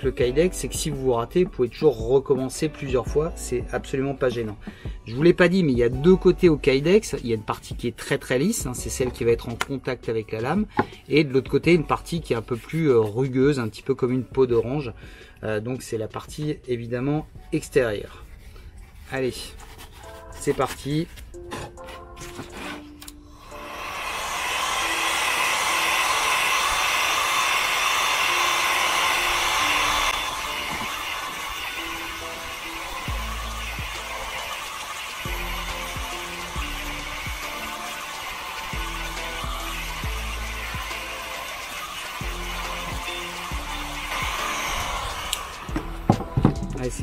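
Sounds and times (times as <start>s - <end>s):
background music with low bass: 0.0s - 23.4s, 28.7s - 47.0s
heat gun blowing: 22.2s - 46.6s.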